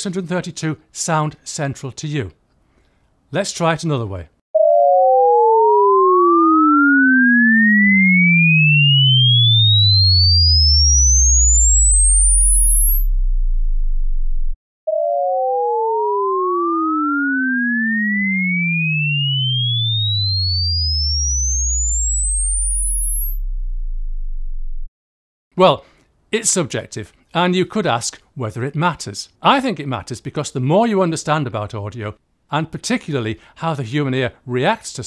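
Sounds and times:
sine tones gliding apart: 0:04.6 - 0:24.9.

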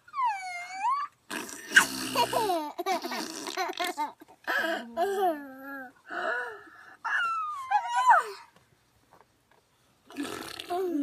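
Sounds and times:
young child squealing and whining: 0:00.0 - 0:01.2, 0:07.1 - 0:08.5.

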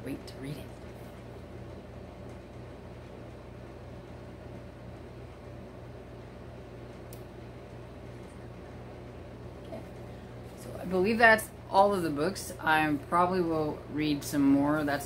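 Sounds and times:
low room hum: 0:00.0 - 0:15.0.

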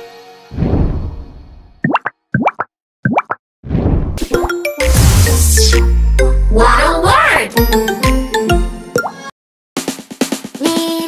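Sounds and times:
rising bloop plops: 0:01.8 - 0:03.4
logo jingle: 0:04.4 - 0:08.9.

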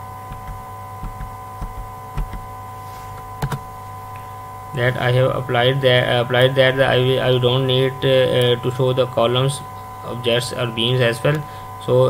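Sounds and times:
steady electrical hum: 0:00.0 - 0:12.0.

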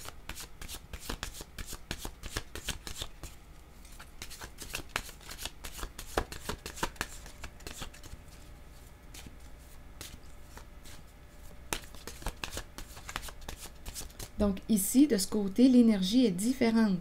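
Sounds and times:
cards being shuffled: 0:00.0 - 0:14.4.

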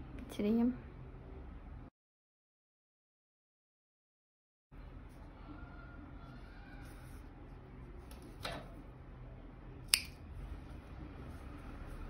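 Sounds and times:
scissors snipping yarn: 0:09.9 - 0:10.2.

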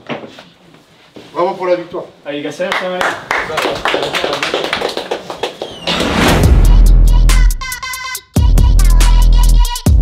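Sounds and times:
group clapping: 0:02.6 - 0:06.3
bass-heavy electronic music: 0:06.1 - 0:10.0.

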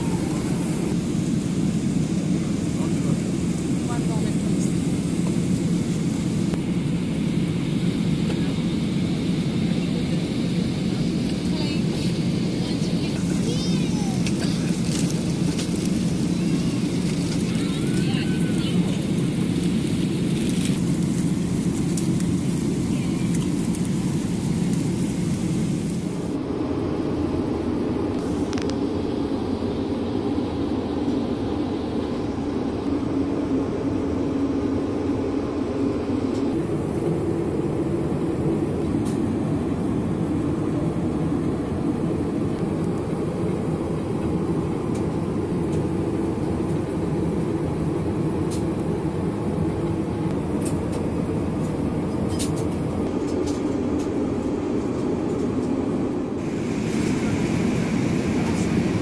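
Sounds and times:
airliner cabin rumble: 0:00.0 - 0:59.0.

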